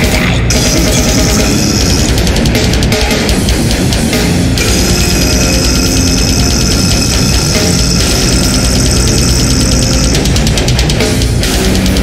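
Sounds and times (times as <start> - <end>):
death metal music: 0.0 - 12.0.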